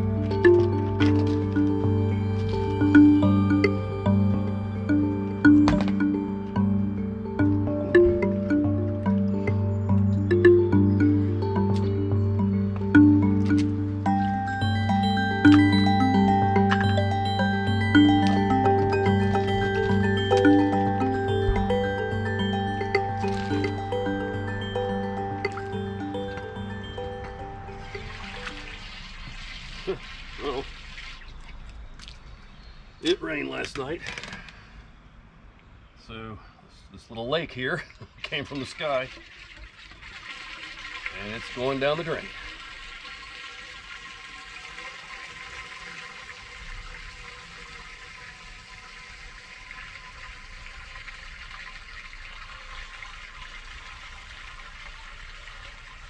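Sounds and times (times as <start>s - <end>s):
background music: 0.0s - 29.2s
rainwater pouring down a drain: 27.7s - 32.4s, 37.9s - 56.0s.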